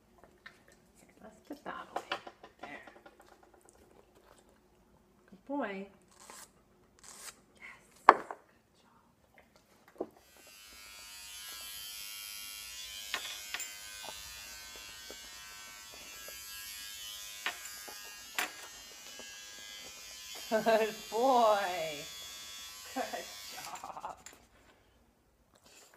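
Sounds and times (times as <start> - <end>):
electric hair trimmer buzzing: 10.2 - 24.0.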